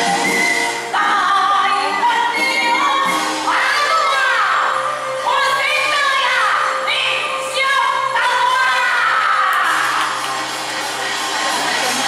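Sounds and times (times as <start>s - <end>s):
live opera music: 0.0s - 12.0s.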